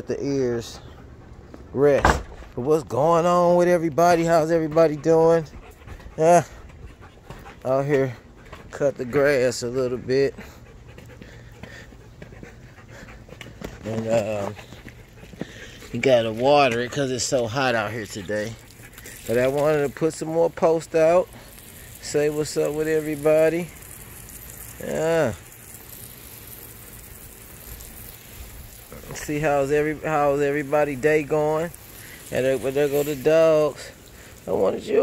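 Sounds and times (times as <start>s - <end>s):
dog panting: 0.1s - 1.7s, 3.2s - 24.7s, 25.9s - 35.0s
water spraying onto lawn: 12.6s - 35.0s.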